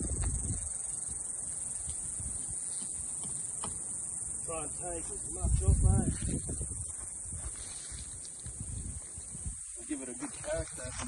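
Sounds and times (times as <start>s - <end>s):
footsteps through dry grass: 4.8s - 11.0s.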